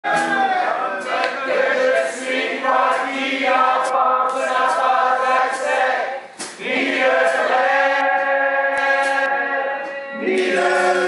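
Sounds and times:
men singing in harmony: 6.8s - 11.0s.

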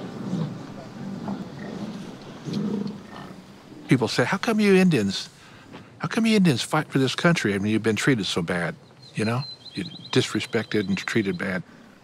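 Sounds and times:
bison grunting: 0.0s - 4.0s.

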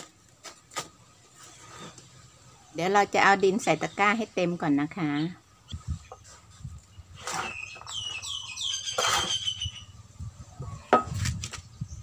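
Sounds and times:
bird chirping: 5.0s - 10.9s.

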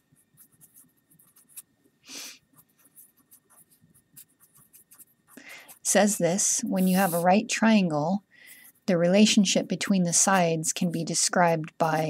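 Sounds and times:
marker scratching on paper: 0.0s - 1.7s, 2.5s - 7.8s, 8.5s - 12.0s.

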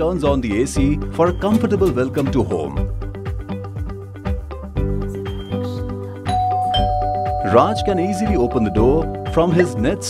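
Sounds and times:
background music: 0.0s - 10.0s
doorbell chime ding-dong: 6.3s - 10.0s.

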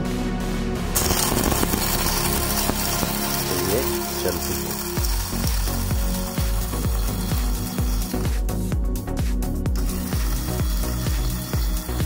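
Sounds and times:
coffee grinder motor hum: 1.0s - 12.0s.

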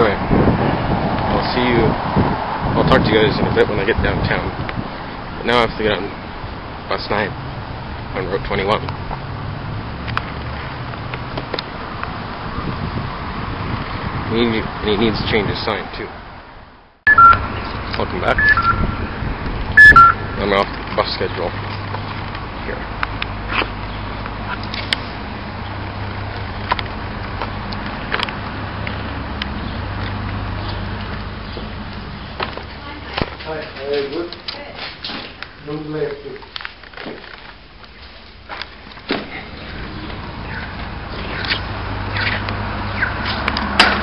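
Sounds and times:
wind on microphone: 0.0s - 5.5s, 10.2s - 15.7s, 17.2s - 20.4s
vehicle engine humming: 0.0s - 14.3s, 16.2s - 34.7s, 35.3s - 44.0s.

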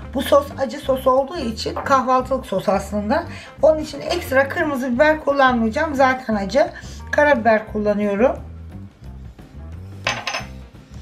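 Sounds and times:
soft background music: 0.0s - 11.0s
kitchenware clatter: 10.0s - 10.6s.

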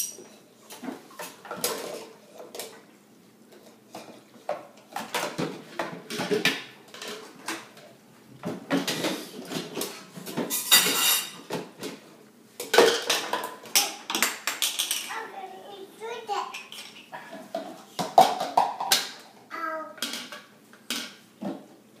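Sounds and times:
toy kitchen pieces clattering: 12.6s - 15.2s
toddler babble: 19.5s - 20.0s.

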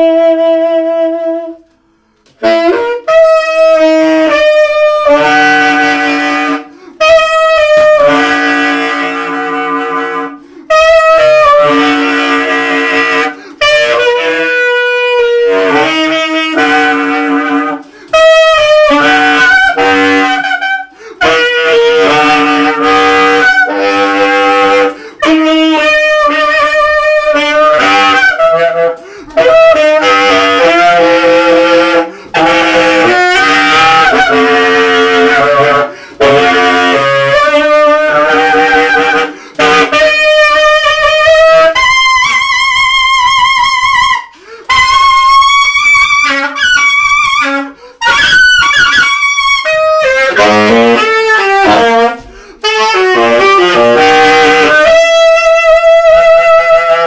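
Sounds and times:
tenor saxophone playing: 0.0s - 57.0s.

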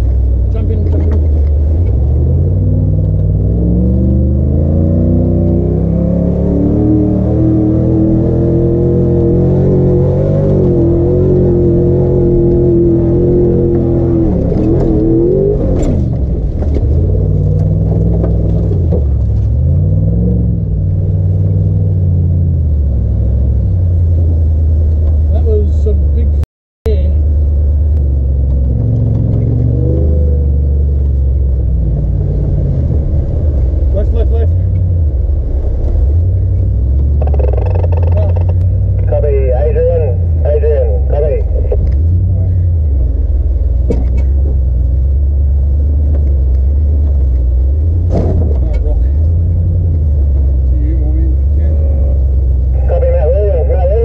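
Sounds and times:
off-road truck engine revving: 0.0s - 54.0s.

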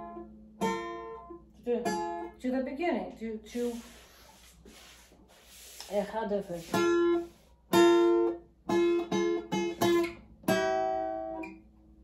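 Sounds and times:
acoustic guitar strumming: 0.0s - 2.4s, 6.6s - 11.7s.

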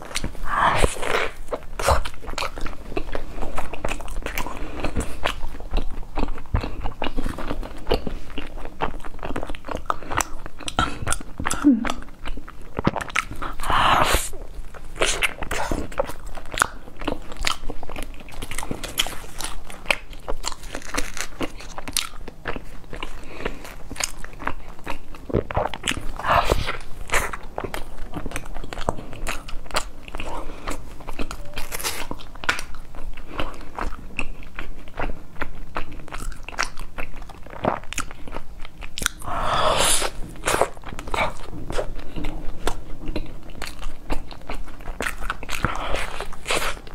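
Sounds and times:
biting and chewing crusty bread: 0.0s - 46.9s.

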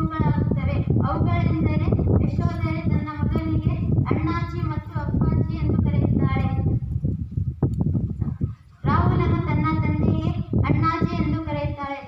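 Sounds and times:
girl speaking into a microphone: 0.0s - 6.9s, 8.2s - 12.0s.

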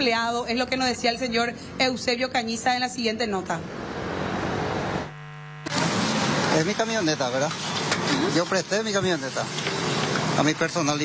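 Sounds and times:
low electrical hum: 0.0s - 7.5s
outdoor background noise: 0.0s - 11.0s
traffic: 1.5s - 11.0s.

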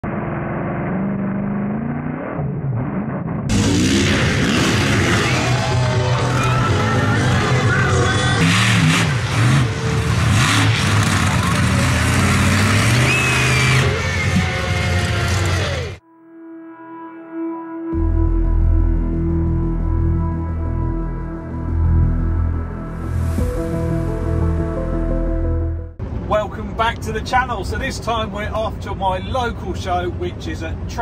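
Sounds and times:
motorbike and truck engines revving: 0.0s - 16.0s
loud music: 3.5s - 16.0s, 16.8s - 26.0s.

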